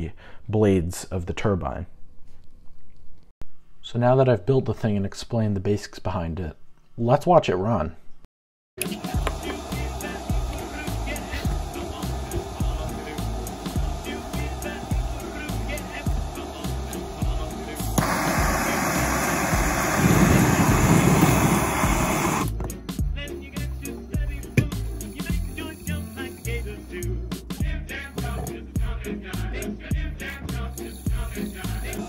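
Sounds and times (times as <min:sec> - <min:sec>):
jet engine rushing: 0:08.8 - 0:22.5
background music with beat: 0:08.8 - 0:32.0.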